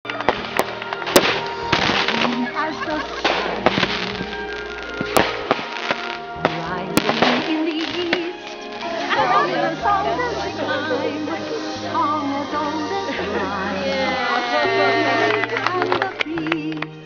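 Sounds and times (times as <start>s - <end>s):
fireworks popping and crackling: 0.0s - 9.3s, 10.3s - 16.8s
music: 0.0s - 17.0s
voices: 1.9s - 5.0s, 5.8s - 17.0s.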